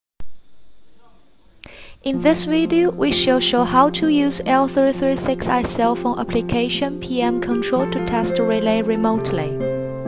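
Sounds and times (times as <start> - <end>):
faint microphone hiss: 0.2 - 10.0
short breath: 1.6 - 2.0.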